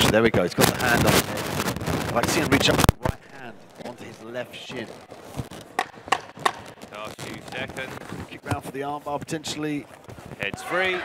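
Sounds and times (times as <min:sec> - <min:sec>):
wooden clapper knocks: 0:05.8 - 0:06.7.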